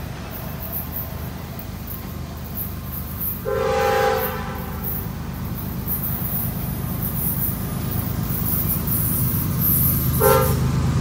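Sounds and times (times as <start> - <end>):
low train rumble: 0.0 - 11.0
locomotive air horn blast: 3.4 - 4.9, 10.2 - 10.8.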